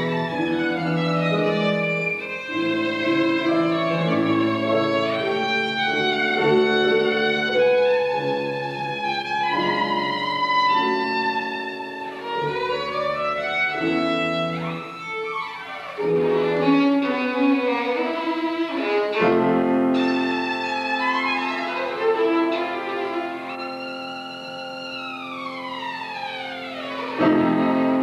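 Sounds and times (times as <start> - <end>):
piano accompaniment: 0.0 - 28.0
violin melody: 0.0 - 28.0.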